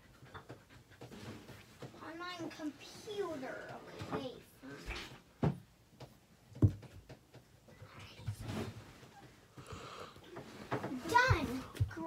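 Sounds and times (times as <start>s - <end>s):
dog panting: 0.0s - 1.9s.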